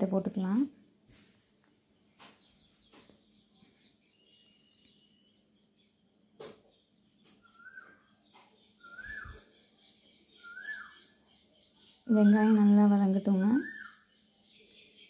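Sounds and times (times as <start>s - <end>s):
bird chirping faintly: 0.1s - 15.0s.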